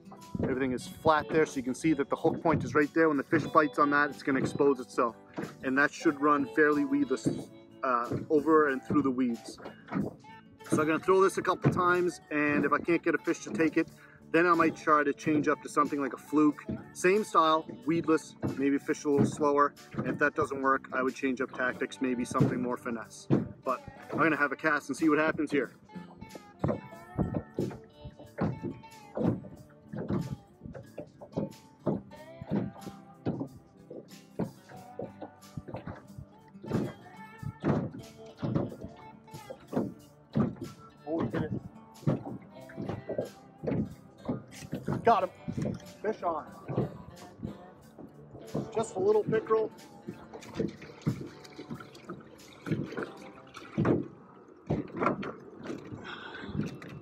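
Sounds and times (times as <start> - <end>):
music with struck notes: 0.0 - 25.7, 26.3 - 54.1
fish splashing in water: 49.8 - 57.0.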